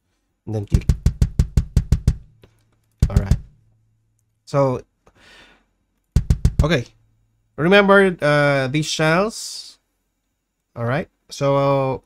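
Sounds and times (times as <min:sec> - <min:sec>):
fast kick drum hits: 0:00.7 - 0:02.4, 0:03.0 - 0:03.6, 0:06.2 - 0:06.9.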